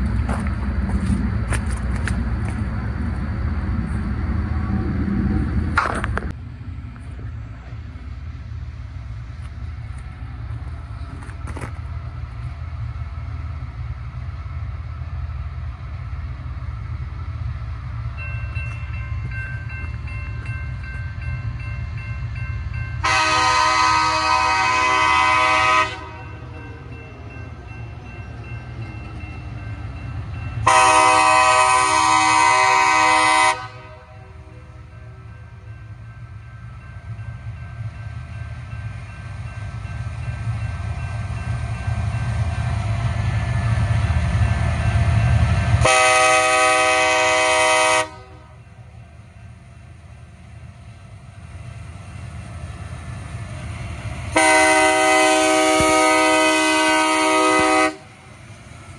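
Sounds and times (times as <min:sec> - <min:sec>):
low train rumble: 0:00.0 - 0:58.9
locomotive air horn blasts: 0:23.0 - 0:26.2, 0:30.6 - 0:34.5, 0:45.8 - 0:48.5, 0:54.4 - 0:58.1.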